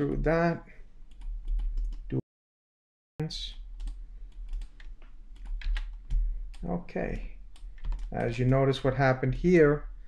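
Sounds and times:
computer keyboard typing: 1.1 - 2.1, 3.5 - 8.6.

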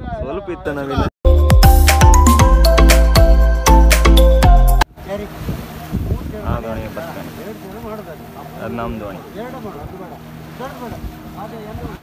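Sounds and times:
boat engine running: 4.9 - 12.0
water rushing along hull: 4.9 - 12.0
wind buffeting microphone: 5.2 - 8.0, 10.8 - 12.0.

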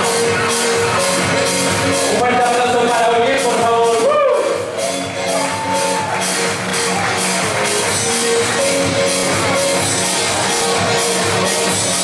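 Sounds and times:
live electro-pop dance song: 0.0 - 12.0.

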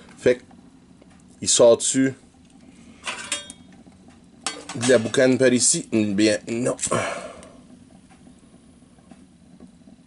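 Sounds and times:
stove burning with low rumble: 0.0 - 10.0.

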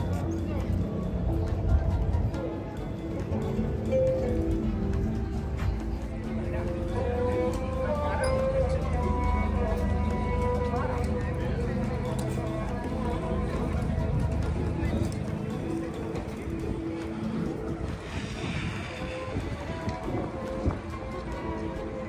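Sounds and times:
music: 0.0 - 22.0
voices of passers-by: 0.0 - 22.0.

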